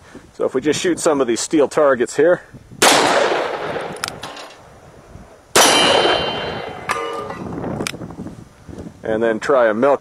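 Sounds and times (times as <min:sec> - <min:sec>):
revolver gunshot: 0:02.8 - 0:04.5, 0:05.6 - 0:07.3
sharp crack: 0:02.8 - 0:04.7, 0:05.5 - 0:08.0
steel target clanging: 0:03.7 - 0:04.6, 0:05.6 - 0:07.6.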